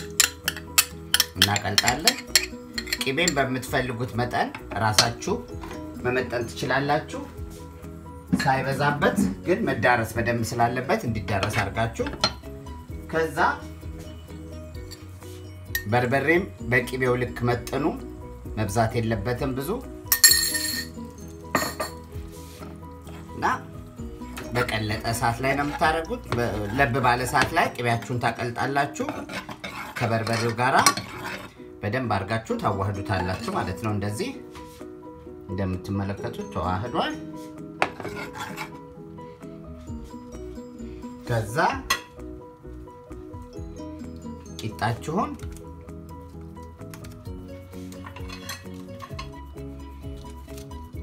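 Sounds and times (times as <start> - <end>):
metal spoon clinking on pot: 0.0 - 3.5, 15.7 - 16.0, 20.1 - 22.0, 29.1 - 31.5, 48.0 - 49.4
background music: 0.0 - 51.0.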